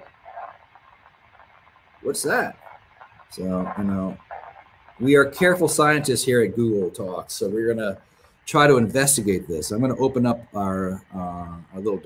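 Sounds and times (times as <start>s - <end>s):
crackling pops from amplifier speaker: 0.0s - 6.2s.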